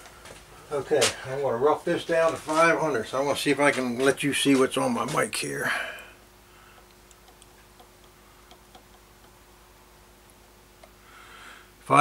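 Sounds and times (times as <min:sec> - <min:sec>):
faint steady hum: 0:00.0 - 0:12.0
micrometer thimble clicks: 0:06.7 - 0:09.4, 0:10.2 - 0:11.0.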